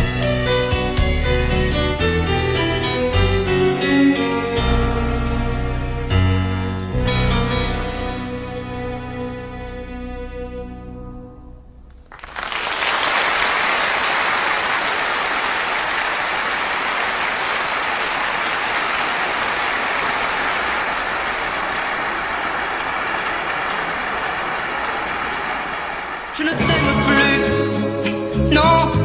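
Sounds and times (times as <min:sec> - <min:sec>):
song: 0:26.4 - 0:29.0.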